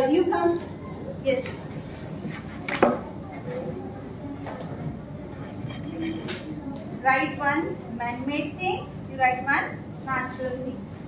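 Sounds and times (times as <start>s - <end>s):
murmur of the room: 0.0s - 11.0s.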